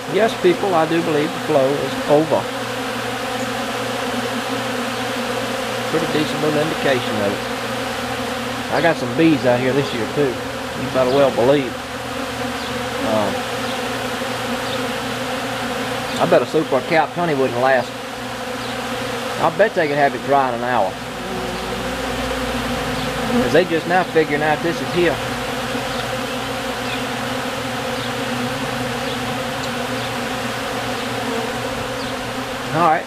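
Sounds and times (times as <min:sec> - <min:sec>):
honey bees buzzing: 0:00.0 - 0:33.0.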